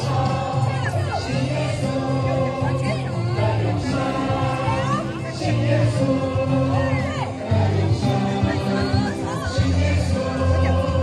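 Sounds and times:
group singing: 0.0s - 11.0s
music with steady beat: 0.0s - 11.0s.

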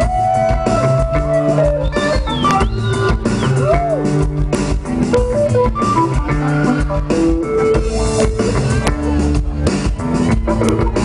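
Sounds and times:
electric guitar lines: 0.0s - 9.4s
live band playing instrumental: 0.0s - 11.0s.

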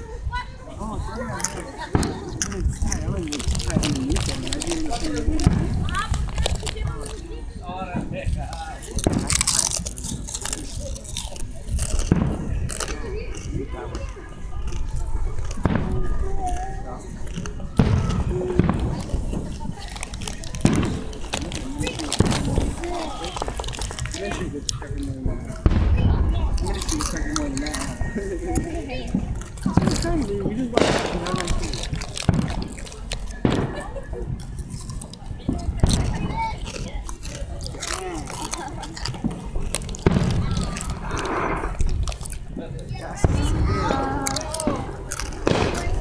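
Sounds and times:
people talking indistinctly: 0.0s - 46.0s
firework bangs: 1.8s - 2.8s, 3.4s - 6.9s, 12.1s - 12.7s, 15.6s - 16.1s, 17.7s - 19.9s, 20.6s - 23.8s, 25.6s - 26.8s, 29.1s - 34.4s, 39.2s - 42.0s, 43.2s - 44.0s, 44.7s - 46.0s.

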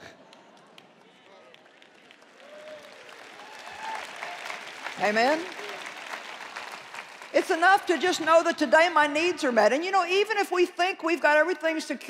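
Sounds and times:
scattered claps: 0.0s - 9.2s.

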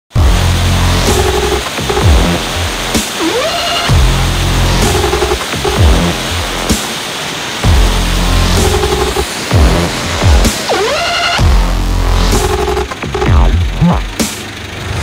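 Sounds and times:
electronic music with heavy bass: 0.1s - 7.0s, 7.6s - 15.0s.

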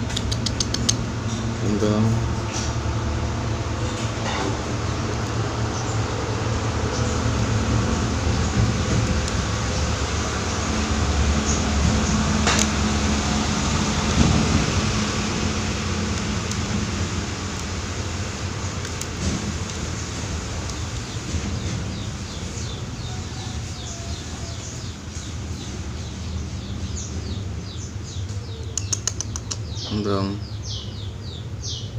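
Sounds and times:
sharp click: 0.0s - 1.1s, 28.6s - 29.8s
small birds chirping: 0.0s - 10.6s, 17.6s - 31.9s
low mechanical hum: 0.0s - 31.9s.

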